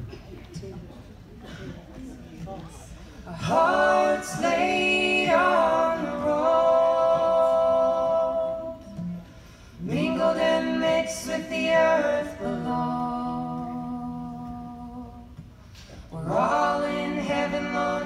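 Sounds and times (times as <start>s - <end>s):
three-part harmony singing: 3.3s - 18.0s.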